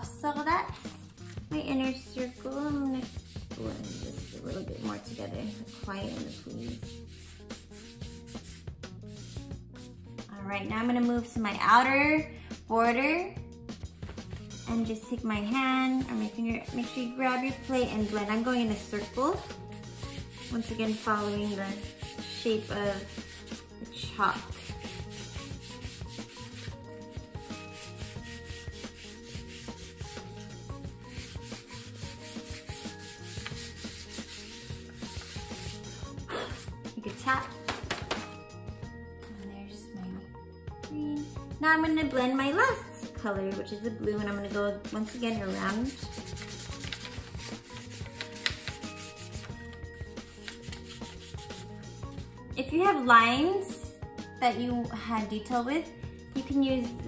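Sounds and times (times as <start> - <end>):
soft background music: 0.0 - 57.0
fingers rubbing on paper: 2.3 - 8.6, 16.1 - 23.6, 24.2 - 30.4, 31.0 - 35.9, 45.1 - 51.7.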